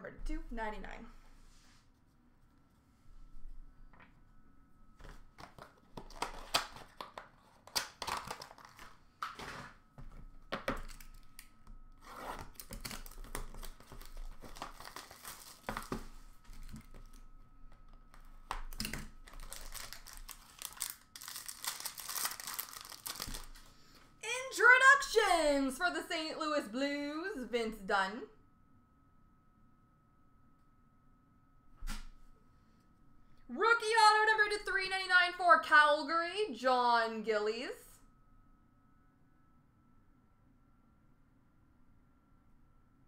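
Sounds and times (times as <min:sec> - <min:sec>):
cardboard and cards handled: 0:05.0 - 0:11.4, 0:12.0 - 0:23.7
wrapper crinkling and tearing: 0:05.4 - 0:09.7, 0:10.7 - 0:17.3, 0:18.5 - 0:23.8.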